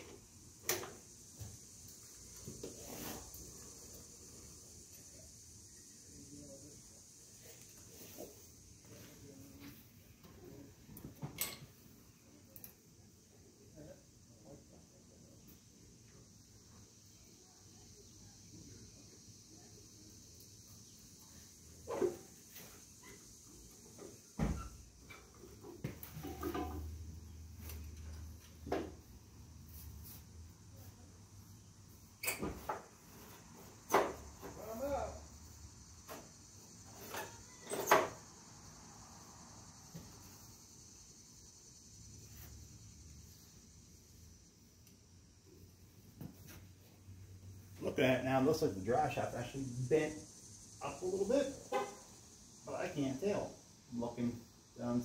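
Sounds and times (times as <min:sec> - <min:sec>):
clanks and knocks of hand tools: 0:11.1 - 0:11.8, 0:26.0 - 0:27.0.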